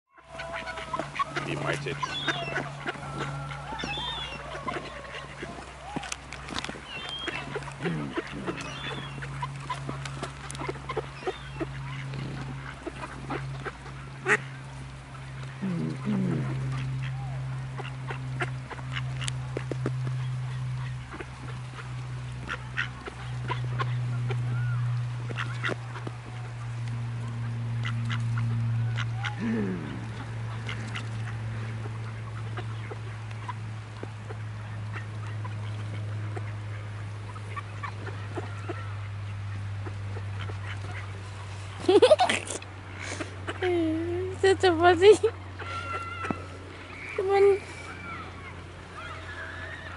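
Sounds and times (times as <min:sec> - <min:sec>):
ducks quacking: 0:00.1 - 0:49.9
steady low hum: 0:00.2 - 0:49.9.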